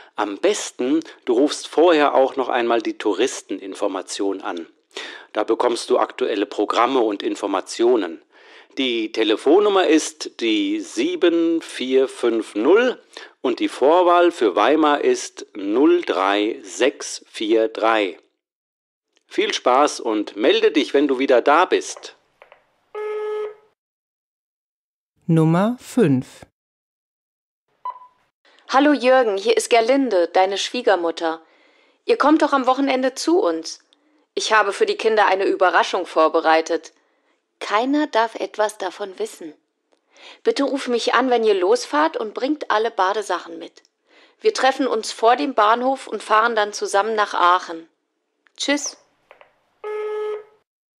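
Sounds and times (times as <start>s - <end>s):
answering machine beep: 27.9s - 28.2s.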